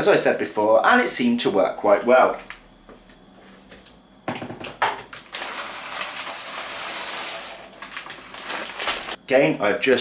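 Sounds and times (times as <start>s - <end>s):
beans pouring into blender jug: 5.3s - 9.1s.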